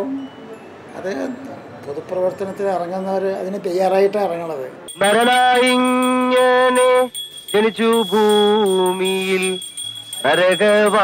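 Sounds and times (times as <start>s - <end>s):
person chanting a prayer: 5.0s - 11.0s.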